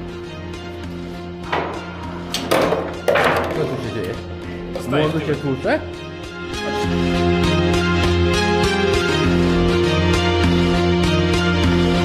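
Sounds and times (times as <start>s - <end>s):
background music: 0.0s - 12.0s
foosball ball knocking on table: 1.5s - 3.8s.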